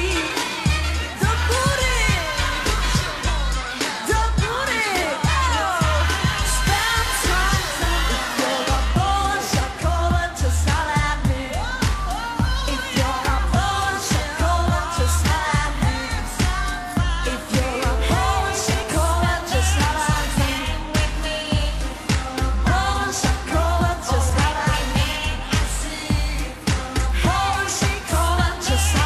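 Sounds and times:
pop song with singing: 0.0 - 29.0.

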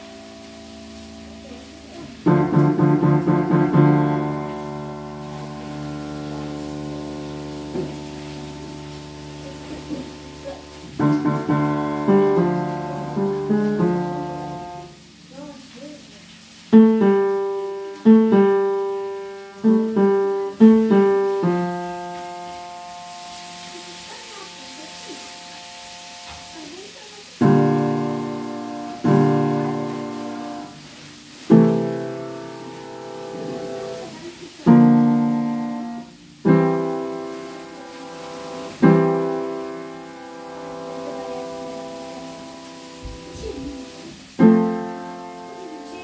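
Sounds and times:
piano chords played slowly: 0.0 - 15.4, 16.5 - 26.8, 27.4 - 46.0.

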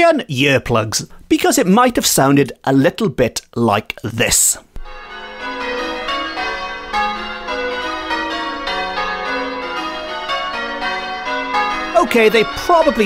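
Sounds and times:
church bells ringing: 4.8 - 13.0.

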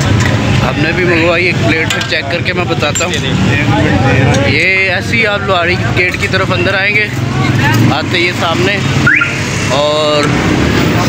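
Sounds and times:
people's voices: 0.0 - 11.0
traffic engines running: 0.0 - 11.0
car horn: 9.0 - 9.5.

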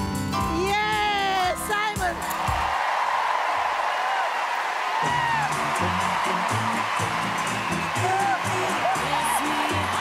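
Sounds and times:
background music with bass line: 0.0 - 2.7, 5.0 - 10.0
audience cheering and applauding: 2.2 - 10.0.

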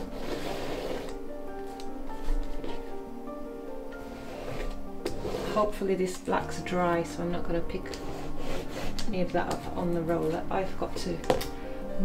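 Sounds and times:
paint roller swishing: 0.0 - 1.2, 4.0 - 5.8, 8.0 - 9.2
background music with held tones: 0.0 - 12.0.

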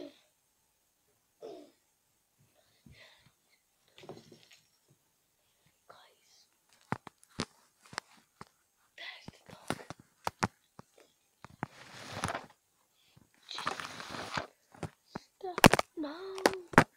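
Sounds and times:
breathy whispering: 5.6 - 6.8, 8.9 - 10.0.

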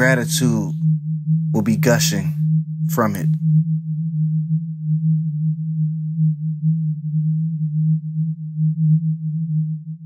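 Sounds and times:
low electronic drone tone: 0.0 - 10.0.

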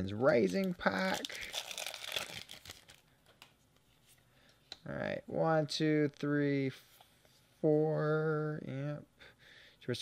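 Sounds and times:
foil wrapper crinkling and tearing: 0.4 - 3.1.

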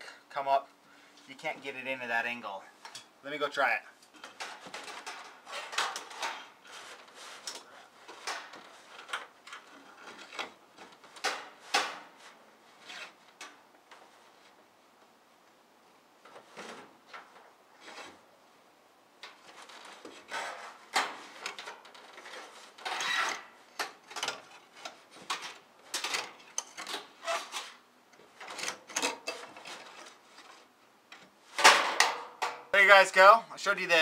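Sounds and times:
wire hanger scraping wooden door: 19.4 - 23.5, 26.0 - 27.8.

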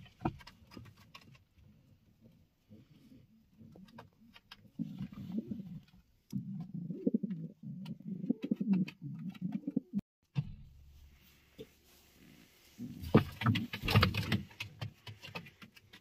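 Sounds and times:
pigeons cooing: 4.8 - 10.0.

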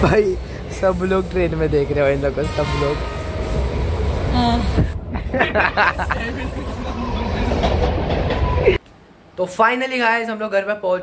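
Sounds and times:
train wheels rumbling: 0.0 - 8.8.

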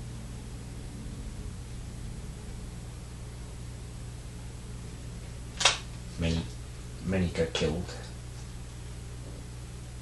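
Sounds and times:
steady low hum: 0.0 - 10.0
sharp click: 5.6 - 5.9.

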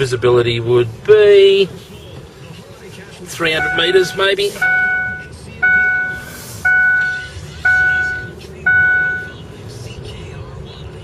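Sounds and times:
rumble of moving car: 0.0 - 11.0
car warning chime dinging: 3.4 - 9.5.

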